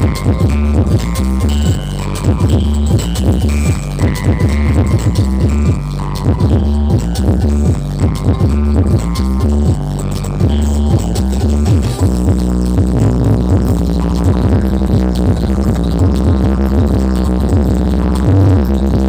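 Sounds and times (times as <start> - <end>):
loud electronic dance music: 0.0 - 19.0.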